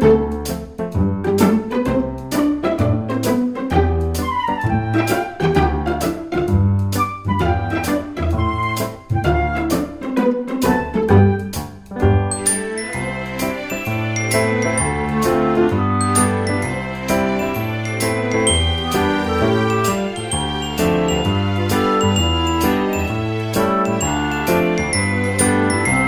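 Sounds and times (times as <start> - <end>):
bell-like melody: 12.3 - 26.0.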